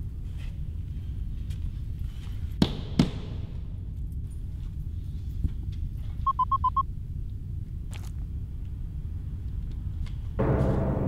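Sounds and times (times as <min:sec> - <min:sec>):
steady low rumble: 0:00.0 - 0:02.6, 0:03.2 - 0:11.0
short high beeps: 0:06.3 - 0:06.8
sharp knocks: 0:10.4 - 0:11.0.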